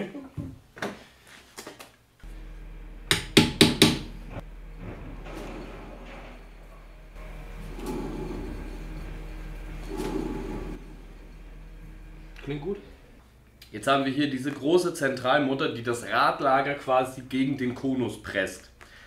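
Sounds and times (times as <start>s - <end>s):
steady low hum: 2.2s - 14.5s.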